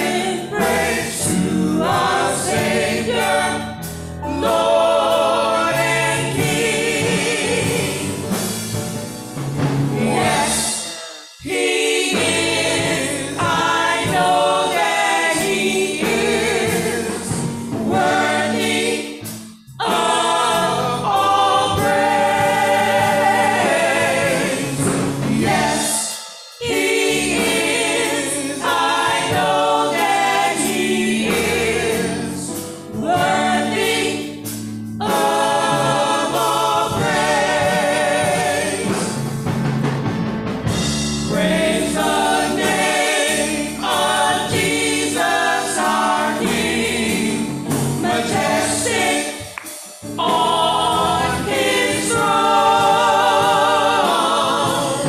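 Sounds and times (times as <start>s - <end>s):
vocal quartet singing gospel harmony: 0.0s - 40.0s, 40.7s - 55.0s.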